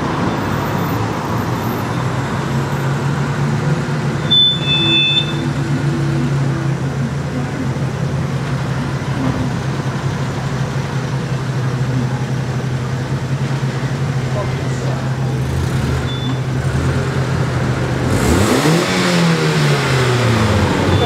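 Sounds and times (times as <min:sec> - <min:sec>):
car pulling away and passing: 0:00.0 - 0:04.3, 0:05.4 - 0:21.0
car engines in slow traffic: 0:00.0 - 0:21.0.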